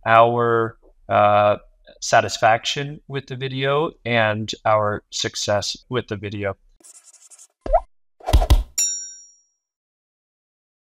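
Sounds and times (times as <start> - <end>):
bright bell-like ding: 8.8 - 9.5.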